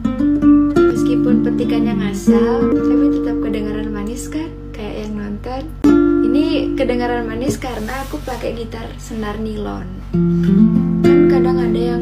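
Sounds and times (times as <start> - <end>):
nylon-string guitar fingerpicked: 0.0 - 9.3, 10.0 - 12.0.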